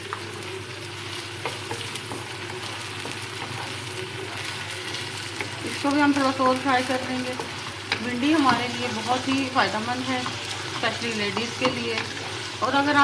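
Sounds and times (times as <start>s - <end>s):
okra sizzling in oil: 0.0s - 13.0s
wooden spoon scraping a pan: 1.4s - 13.0s.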